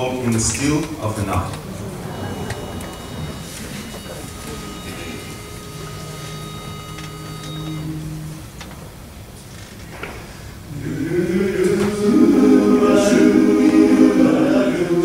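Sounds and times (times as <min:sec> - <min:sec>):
chorus holding faint notes: 0:00.0 - 0:09.4, 0:10.6 - 0:15.0.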